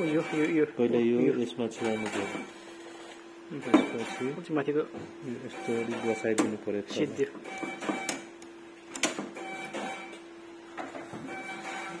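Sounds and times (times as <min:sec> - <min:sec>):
printer mechanism clicking: 0:08.9 - 0:09.3.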